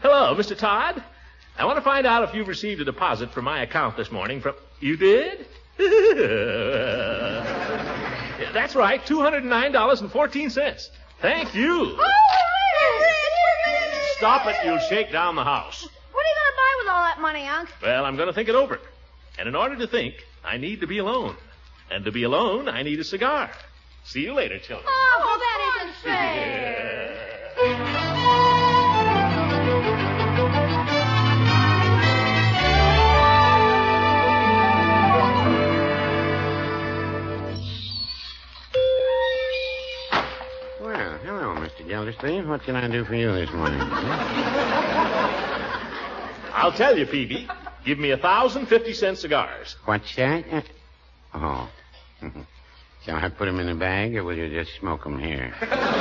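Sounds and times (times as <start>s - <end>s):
high-pitched whoop of joy: 12.0s - 15.1s
music bridge: 27.6s - 38.1s, 38.8s - 42.5s
shop door bell ringing: 38.7s - 42.2s.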